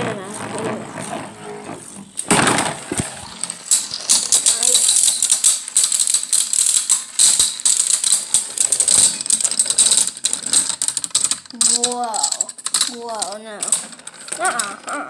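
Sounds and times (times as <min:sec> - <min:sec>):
spinning tops whirring: 0:00.0 - 0:15.0
spinning tops rattling clicks: 0:02.0 - 0:15.0.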